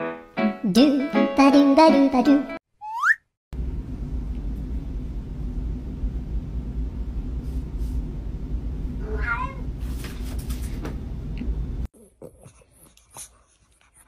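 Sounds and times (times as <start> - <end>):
cat meowing: 9.0 - 9.7.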